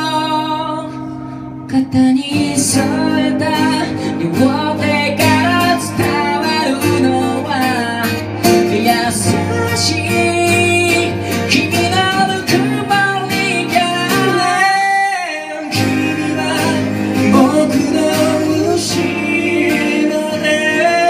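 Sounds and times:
acoustic guitars strummed: 0.0s - 21.0s
person singing: 0.0s - 21.0s.

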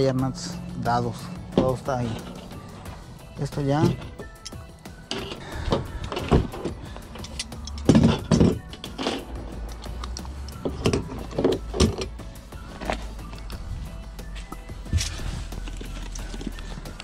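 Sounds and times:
background music: 0.0s - 17.0s
tools knocking and clicking: 3.8s - 12.1s.

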